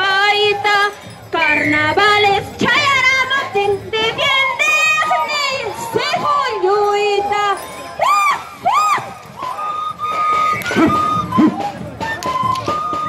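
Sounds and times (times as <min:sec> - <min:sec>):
women singing and shouting: 0:00.0 - 0:11.6
crowd: 0:00.0 - 0:13.0.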